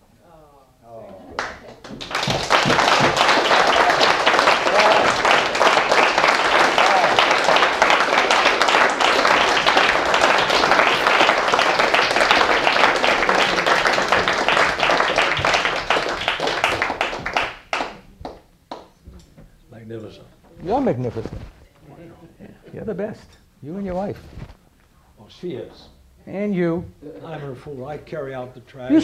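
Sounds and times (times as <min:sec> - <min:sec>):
audience applauding: 0:01.3 - 0:18.8.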